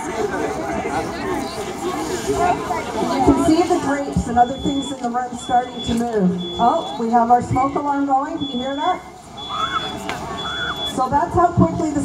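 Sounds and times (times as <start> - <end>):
smoke alarm beeping: 4.4 - 7.2, 8.3 - 11.1.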